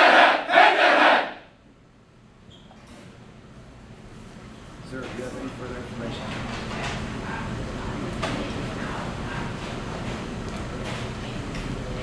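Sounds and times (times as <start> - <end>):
soldiers chanting in unison: 0.0 - 1.4.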